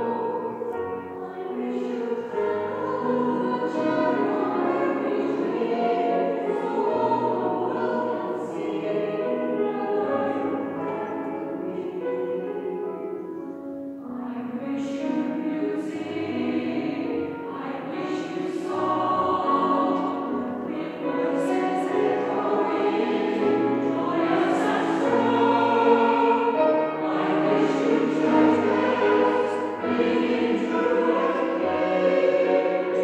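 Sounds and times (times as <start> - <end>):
mixed choir singing: 0.0 - 13.2, 14.0 - 33.0.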